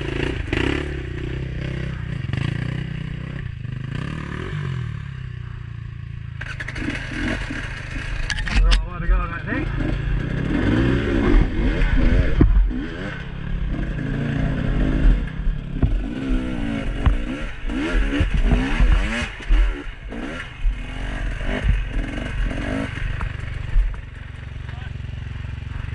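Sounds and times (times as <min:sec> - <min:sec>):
dirt bike engine revving: 0:00.0 - 0:05.6, 0:06.4 - 0:25.9.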